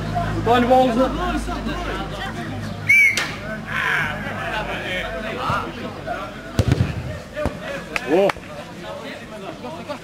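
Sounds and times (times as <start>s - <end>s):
players calling out: 0.0s - 10.0s.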